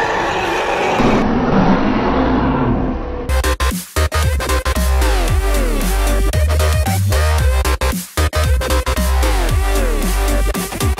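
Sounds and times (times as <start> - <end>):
dense film sound effects: 0.0 - 3.7.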